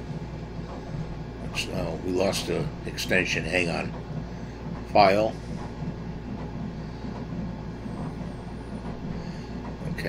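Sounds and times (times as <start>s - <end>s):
machine-like hum and rumble: 0.0s - 10.0s.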